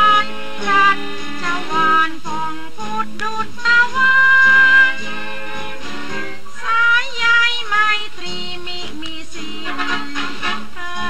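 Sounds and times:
woman singing: 0.0 - 5.2, 6.5 - 11.0
instrumental accompaniment: 0.0 - 11.0.

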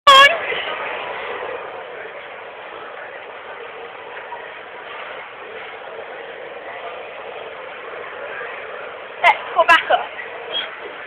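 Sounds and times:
busy indoor background noise: 0.1 - 11.0.

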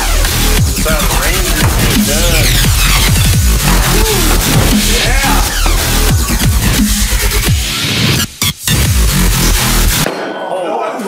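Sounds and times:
electronic dance music with heavy bass: 0.0 - 10.0
voices: 0.7 - 6.9.

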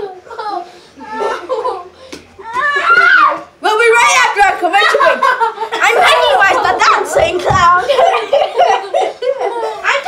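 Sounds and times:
children shouting and laughing: 0.0 - 10.0.

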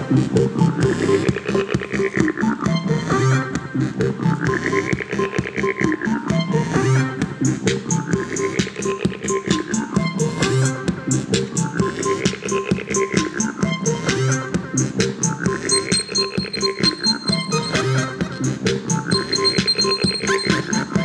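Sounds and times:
fast pulsing synth beat: 15.2 - 21.0
sweeping synth tones: 15.7 - 18.4.

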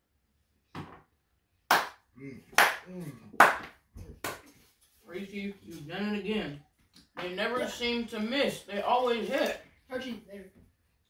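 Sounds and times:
hand claps: 1.7 - 4.6
person humming mm: 2.2 - 3.4.

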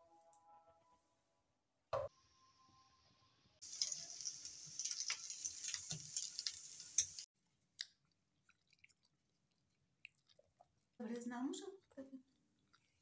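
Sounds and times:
food sizzling in oil: 3.6 - 7.3.

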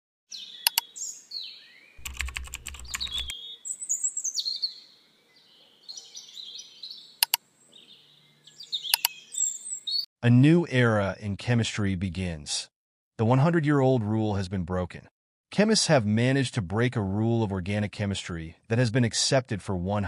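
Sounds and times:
birds chirping: 0.3 - 10.1
mouse-click sound effects: 0.7 - 0.9, 2.0 - 3.3, 8.9 - 9.2.

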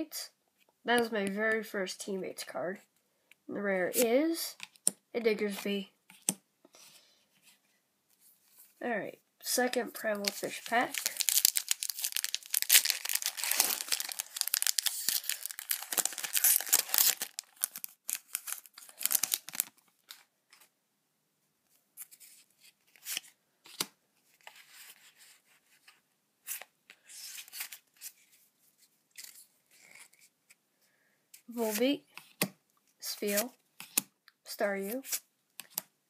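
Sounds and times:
cards flicking and rustling: 9.7 - 19.7
foil pack tearing and crinkling: 10.2 - 19.8.

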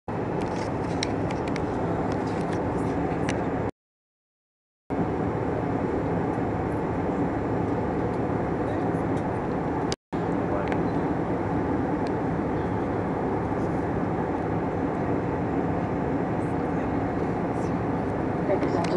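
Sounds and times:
aircraft cabin engine and airflow drone: 0.1 - 3.7, 4.9 - 18.9.

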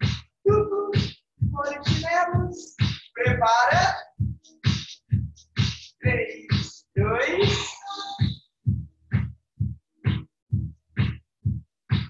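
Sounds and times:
aerobics dance music: 0.0 - 8.5, 9.1 - 9.4, 10.0 - 12.0.

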